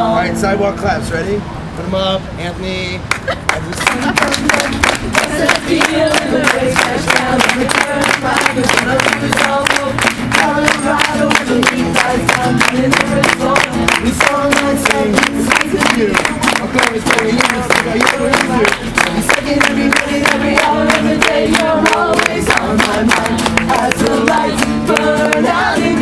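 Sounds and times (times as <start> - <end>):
hand claps: 3.1 - 25.9
voices singing together: 3.9 - 26.0.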